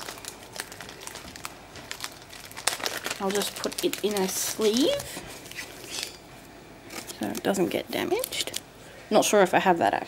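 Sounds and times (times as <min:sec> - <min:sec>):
crinkling plastic packaging: 0:00.0 - 0:06.1, 0:06.9 - 0:08.6.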